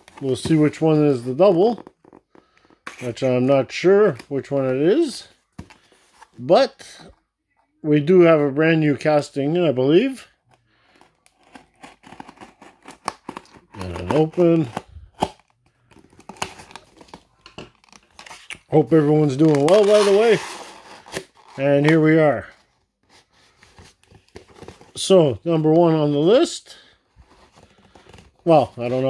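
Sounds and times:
knife cutting cardboard: 11.4 - 15.3.

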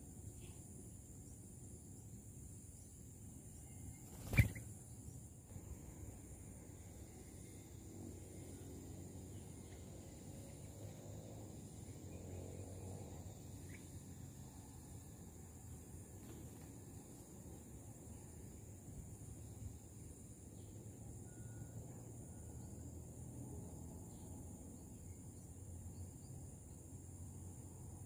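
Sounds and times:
high insect drone: 0.0 - 28.0
faint short chirp: 21.2 - 22.6.

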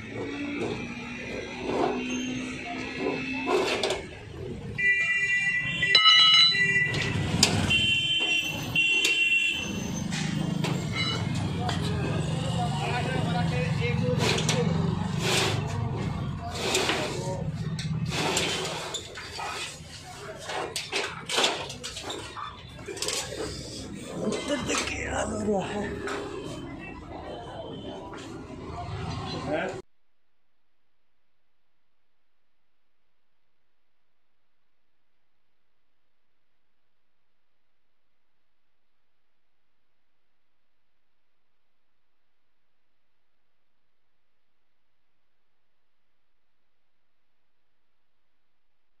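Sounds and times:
people talking: 11.3 - 18.2, 22.8 - 29.8
metal rolling shutter rattling: 13.1 - 26.5.

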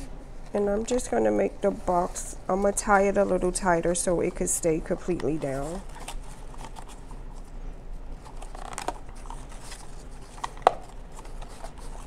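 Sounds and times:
ribbon and card rustling: 4.3 - 7.5, 8.2 - 12.0.

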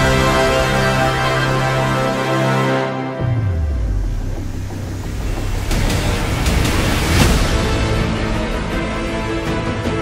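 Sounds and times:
deep low rumble: 3.3 - 7.8.

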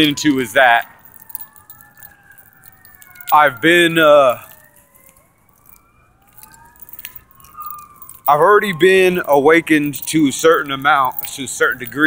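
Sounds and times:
faint siren wailing: 0.0 - 12.0.

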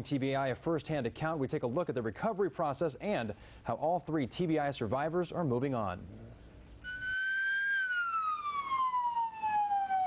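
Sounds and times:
ambulance siren wailing: 6.8 - 10.0.

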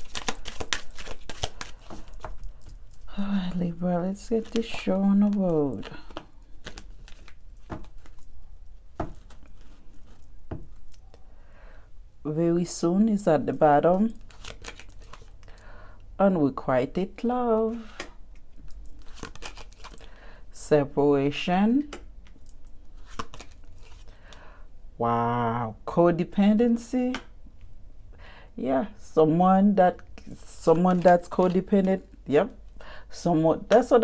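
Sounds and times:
playing cards rustling: 0.0 - 11.0, 14.0 - 15.4, 17.7 - 20.1, 22.2 - 24.2, 30.2 - 32.2
cards clicking and tapping: 0.1 - 2.6, 6.1 - 8.2.

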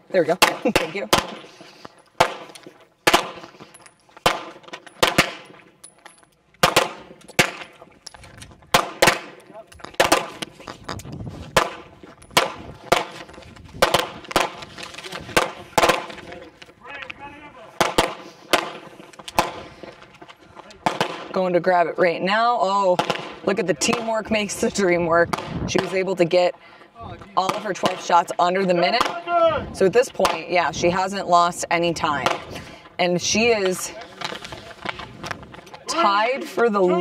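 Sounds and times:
single gunshots: 2.2 - 3.4, 4.2 - 5.4, 6.6 - 7.7, 8.7 - 9.4, 10.0 - 10.4, 17.8 - 19.6, 20.8 - 21.3, 23.0 - 24.0.

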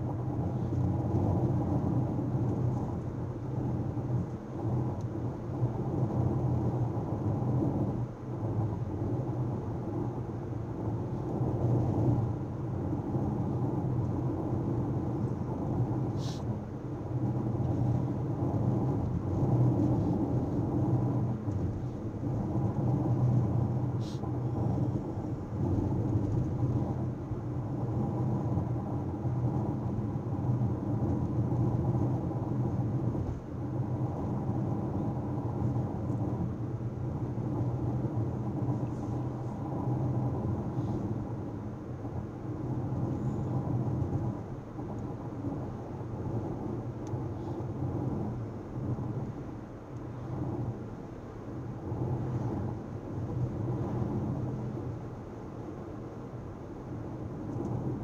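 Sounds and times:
car road and engine rumble: 0.0 - 58.0.

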